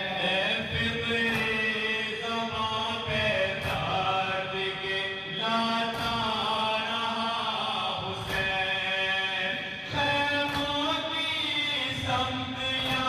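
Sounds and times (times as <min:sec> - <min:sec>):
men chanting a lament in unison: 0:00.0 - 0:13.0.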